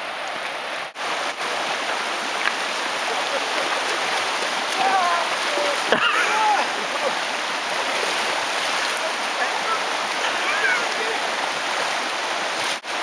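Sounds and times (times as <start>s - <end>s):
mountain river rushing over rocks: 0.0s - 13.0s.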